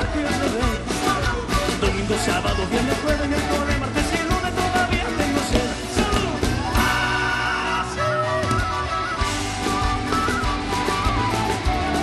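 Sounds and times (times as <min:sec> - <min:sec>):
live band playing: 0:00.0 - 0:12.0
steady drum beat: 0:00.0 - 0:12.0
strummed charango: 0:00.0 - 0:12.0.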